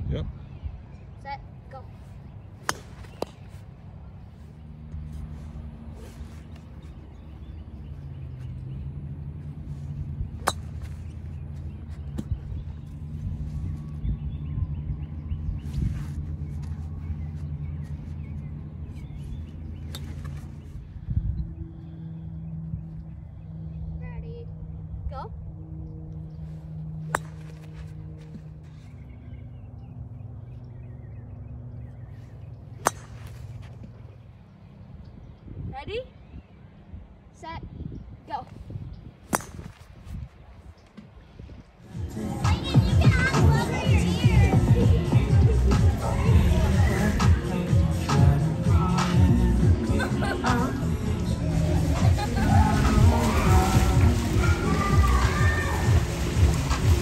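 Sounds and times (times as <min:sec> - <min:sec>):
golf club striking ball: 0:10.3 - 0:11.4, 0:27.1 - 0:27.6, 0:32.8 - 0:33.8, 0:39.3 - 0:39.8.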